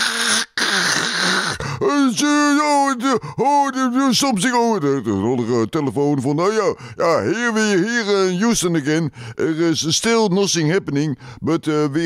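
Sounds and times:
man's hoarse hissing: 0:00.0 - 0:01.9.

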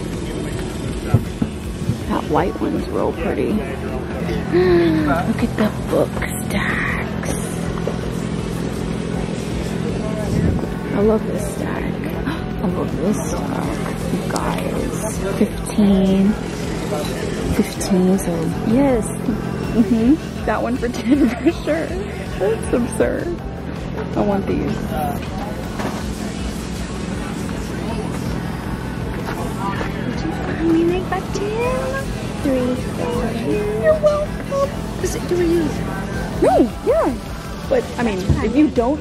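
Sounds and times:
faint chatter of people: 0:00.0 - 0:39.0
faint voices: 0:00.0 - 0:39.0
outdoor low rumble: 0:00.0 - 0:39.0
steady low hum: 0:00.0 - 0:39.0.

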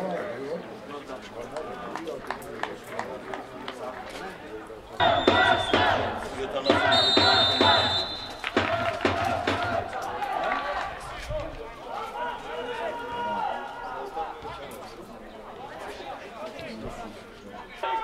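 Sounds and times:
shrill whistle blast: 0:05.0 - 0:06.0, 0:06.6 - 0:08.6
men shouting: 0:05.0 - 0:11.0.

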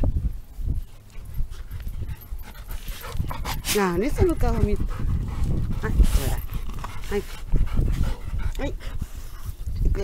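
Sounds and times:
dogs panting: 0:00.8 - 0:10.0.

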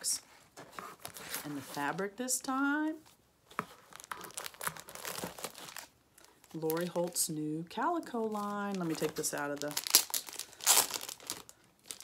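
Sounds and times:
plastic wrapping crinkling: 0:03.6 - 0:07.3, 0:08.0 - 0:12.0.

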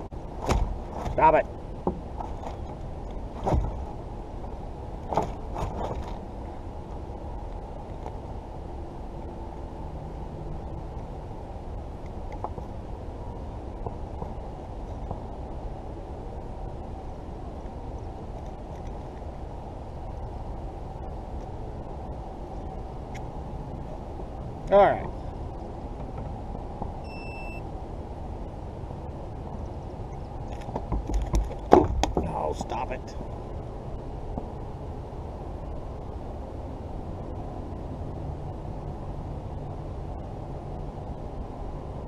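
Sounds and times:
steady low rumble: 0:00.0 - 0:42.0.

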